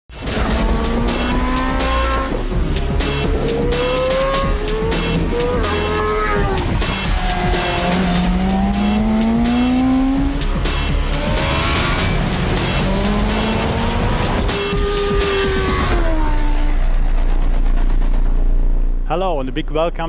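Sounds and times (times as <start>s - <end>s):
background music with beat: 0.1s - 20.0s
motorcycle engine revving: 0.2s - 18.4s.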